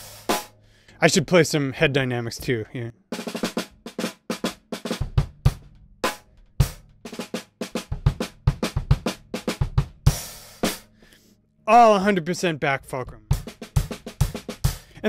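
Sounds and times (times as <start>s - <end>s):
snare and cymbal strokes: 0.0s - 0.7s, 3.2s - 11.0s.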